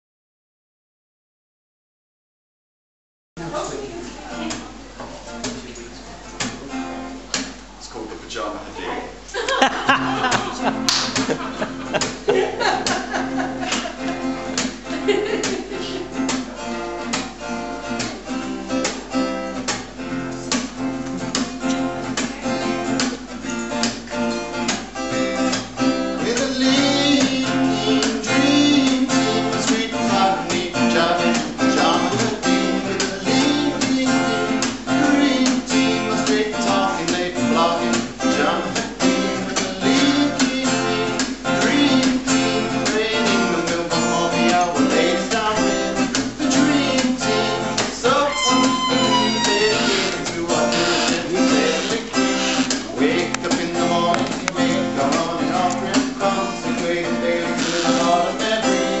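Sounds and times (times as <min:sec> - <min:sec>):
acoustic guitar strumming: 0:03.6 - 0:07.7, 0:09.5 - 0:59.0.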